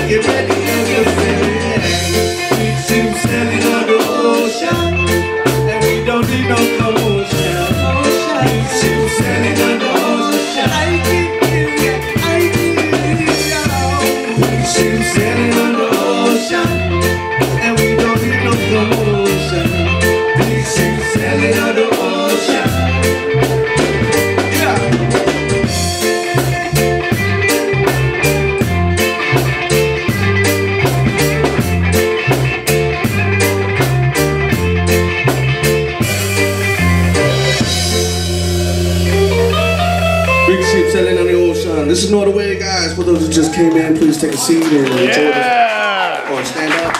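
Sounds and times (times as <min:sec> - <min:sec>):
live reggae band playing: 0:00.0 - 0:46.5.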